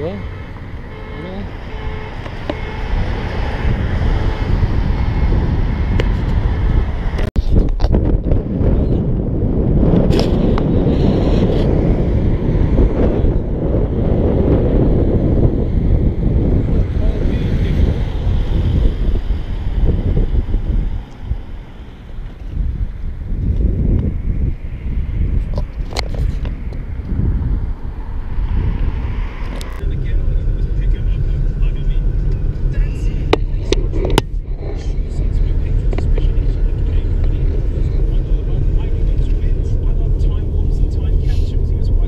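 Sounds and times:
strong wind buffeting microphone: 0:00.0 - 0:42.0.

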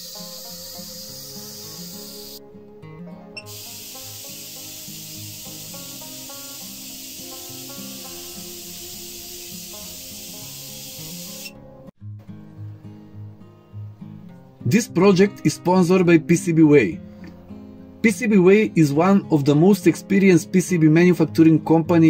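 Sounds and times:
high-voltage discharge hiss: 0:00.0 - 0:02.4, 0:03.4 - 0:11.6
background music: 0:00.0 - 0:22.0.

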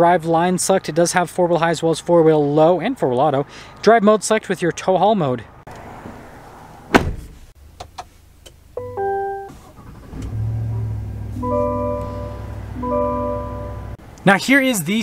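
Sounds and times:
sharp thunk: 0:06.9 - 0:07.4
truck engine idling: 0:09.8 - 0:14.0
electronic chime: 0:11.4 - 0:14.0
repeating warning chime: 0:11.4 - 0:14.0.

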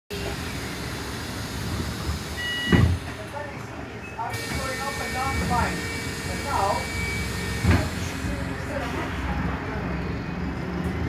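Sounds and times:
bus rumble from inside: 0:00.1 - 0:11.0
short two-tone beep: 0:02.4 - 0:02.9
voices: 0:03.1 - 0:10.2.

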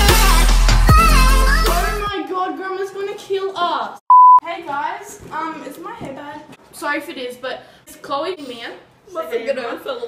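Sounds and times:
electronic test-tone beep: 0:04.1 - 0:04.4.

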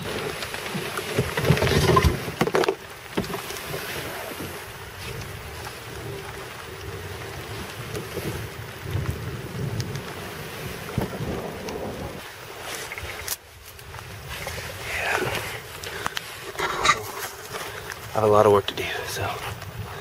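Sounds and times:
kayak dragged over sand: 0:00.0 - 0:20.0
wind noise on microphone: 0:03.2 - 0:18.2, 0:18.9 - 0:20.0.

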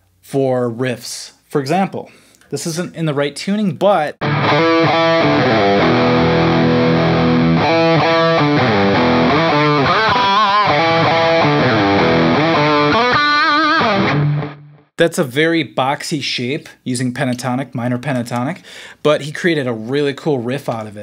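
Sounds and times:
distorted electric guitar riff: 0:04.2 - 0:14.9.

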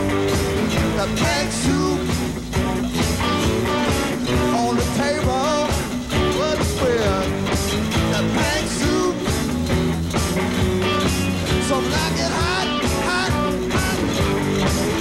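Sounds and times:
electric guitar lead bending pitch: 0:00.0 - 0:15.0
live rock band: 0:00.0 - 0:15.0.

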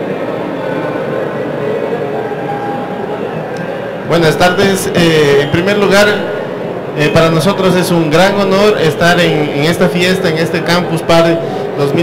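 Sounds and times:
event hall background noise: 0:00.0 - 0:12.0.

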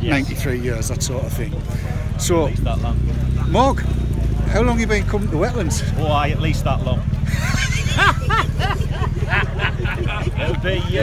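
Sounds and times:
man laughing: 0:07.3 - 0:10.9.

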